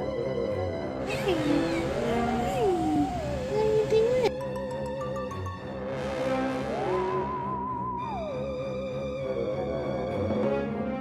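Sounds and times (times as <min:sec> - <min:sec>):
music with wavering held tone: 0:02.0 - 0:11.0.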